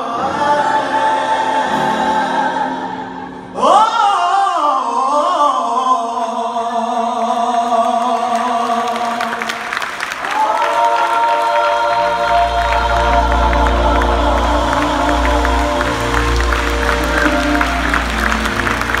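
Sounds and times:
gospel choir holding chord: 0.0 - 19.0
audience clapping: 7.4 - 19.0.

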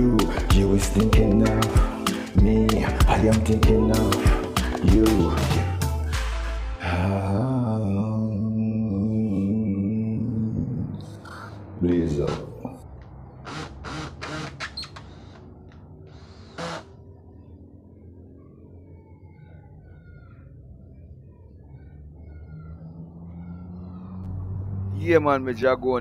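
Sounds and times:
cordless drill bursts: 13.4 - 15.4, 16.2 - 16.8.

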